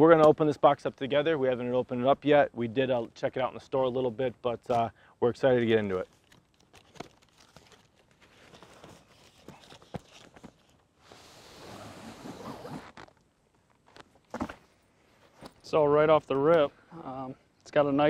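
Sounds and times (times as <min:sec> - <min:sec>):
bag scraping out of box: 0:11.0 - 0:13.0.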